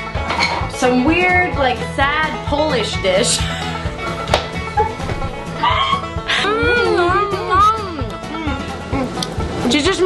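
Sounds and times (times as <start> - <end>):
background music: 0.0 - 10.0
woman moaning mmm: 8.3 - 9.3.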